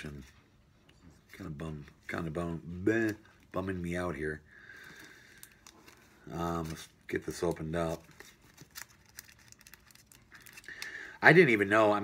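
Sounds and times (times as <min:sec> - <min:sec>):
packaging crinkling and tearing: 0:04.9 - 0:11.0.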